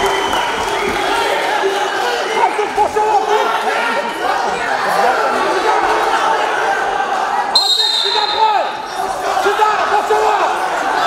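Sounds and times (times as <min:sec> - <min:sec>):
spectators chattering: 0:00.0 - 0:11.0
referee's whistle blast: 0:07.6 - 0:08.8.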